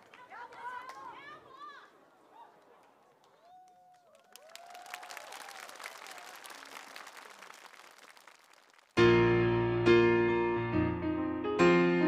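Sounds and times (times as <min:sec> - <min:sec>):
people cheering: 0:00.0 - 0:08.6
audience applauding: 0:03.2 - 0:09.0.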